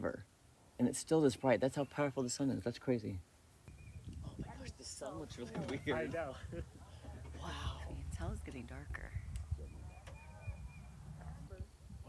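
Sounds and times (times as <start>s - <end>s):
wind rumble on microphone: 3.7s - 12.0s
faint distant voices: 4.1s - 12.0s.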